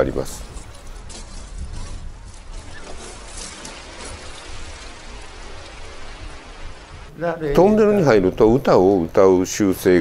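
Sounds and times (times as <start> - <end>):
small waves washing over pebbles: 2.4 - 7.1.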